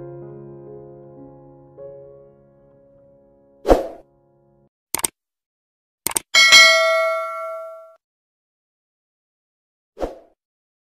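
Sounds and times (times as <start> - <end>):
mouse click: 6.1 - 6.3
notification bell ding: 6.4 - 8.0.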